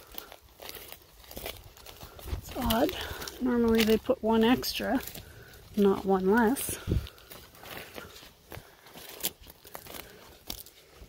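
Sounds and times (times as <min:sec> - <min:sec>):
footsteps crunching on grass and twigs: 0:00.0 - 0:11.0.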